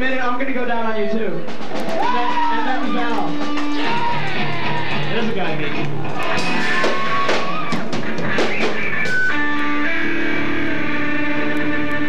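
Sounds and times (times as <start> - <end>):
drums: 0.0 - 12.0
electric guitars: 1.4 - 12.0.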